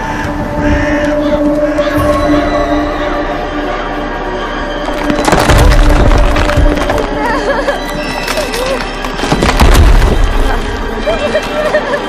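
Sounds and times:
dramatic orchestral score: 0.0s - 12.0s.

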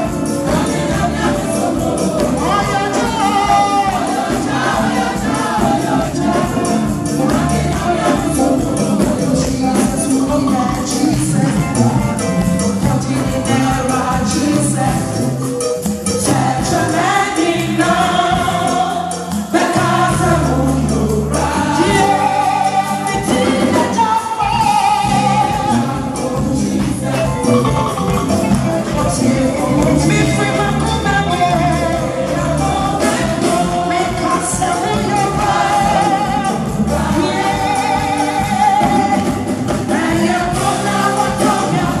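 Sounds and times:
gospel choir singing: 0.0s - 42.0s
lead singer on microphone: 0.0s - 42.0s
live band with bass line: 0.0s - 42.0s.

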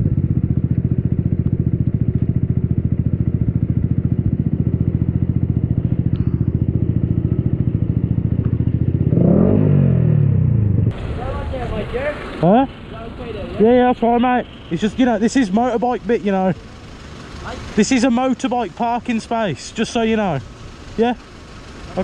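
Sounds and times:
motorcycle engine running: 0.0s - 22.0s.

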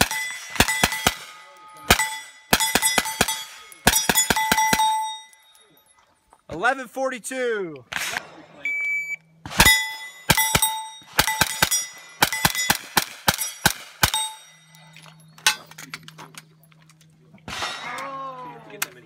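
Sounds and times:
steel targets ringing: 0.0s - 6.0s, 9.5s - 15.7s.

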